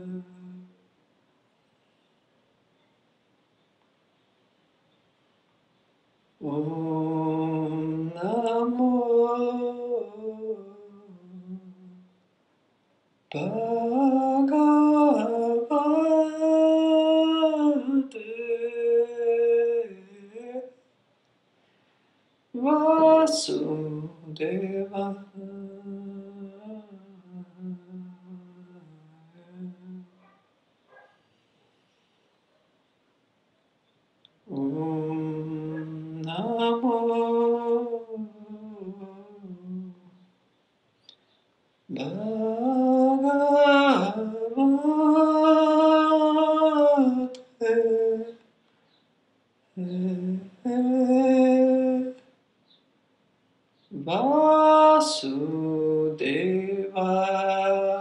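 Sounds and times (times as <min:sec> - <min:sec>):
person humming low note: 0:25.0 - 0:30.1.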